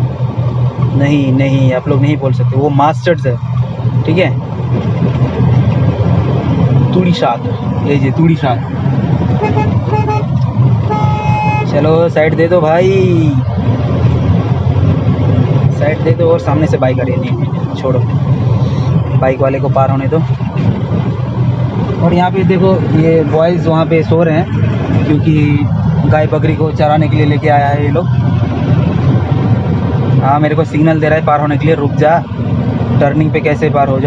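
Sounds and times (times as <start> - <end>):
vehicle engine and road rumble: 0.0 - 34.0.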